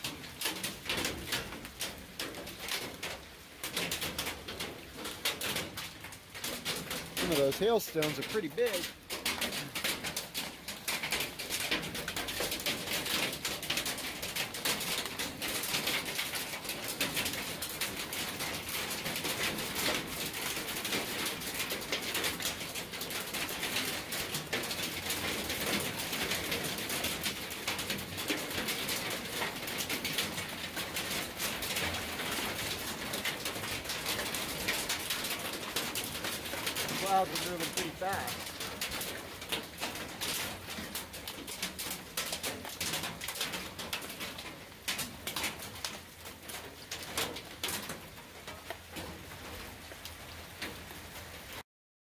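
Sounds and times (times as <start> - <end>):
hail clattering on gravel and concrete: 0.0 - 51.6.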